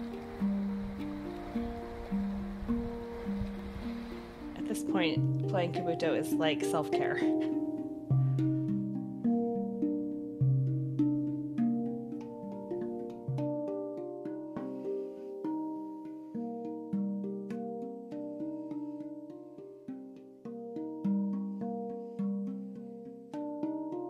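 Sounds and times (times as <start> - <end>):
deep bass handpan note: 0.0 - 24.0
handpan melody: 0.0 - 24.0.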